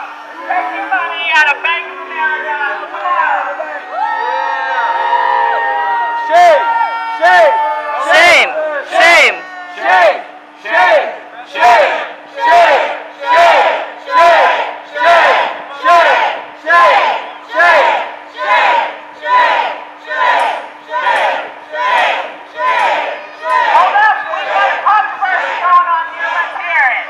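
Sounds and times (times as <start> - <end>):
steady low hum: 0.0 - 27.0
crowd chanting: 7.2 - 27.0.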